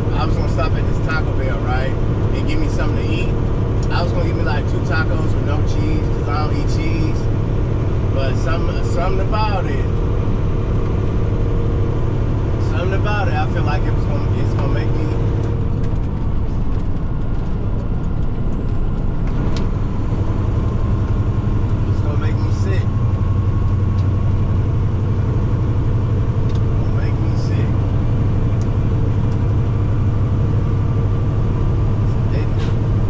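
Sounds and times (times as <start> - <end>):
road noise: 0.0 - 33.0
truck engine drone: 0.0 - 33.0.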